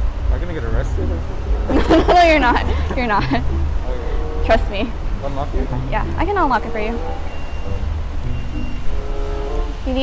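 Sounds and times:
car engine idling: 0:00.0 - 0:10.0
faint conversation: 0:00.3 - 0:07.2.

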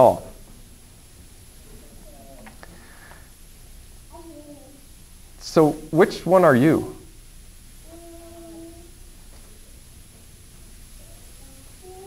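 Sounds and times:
faint steady hum: 0:00.0 - 0:12.0
thin high whine: 0:00.0 - 0:12.0.

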